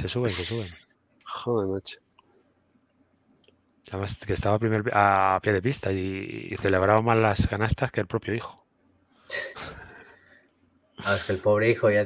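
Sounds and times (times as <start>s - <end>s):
man clearing his throat: 9.3s - 10.0s.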